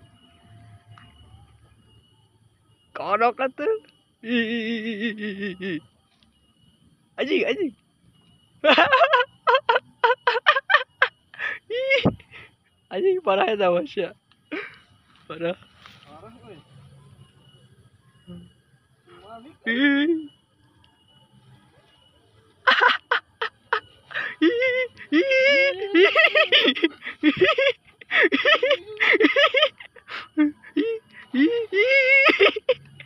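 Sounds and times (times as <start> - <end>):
person squealing: 24.1 - 26.7, 30.4 - 32.7.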